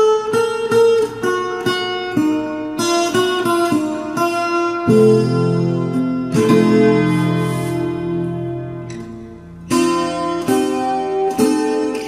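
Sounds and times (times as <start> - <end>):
acoustic guitar picking tango melody: 0.0 - 12.0.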